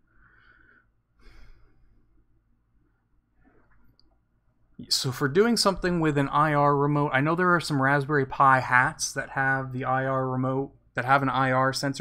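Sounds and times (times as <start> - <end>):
man breathing out: 0.1 - 2.1
man speaking: 4.8 - 12.0.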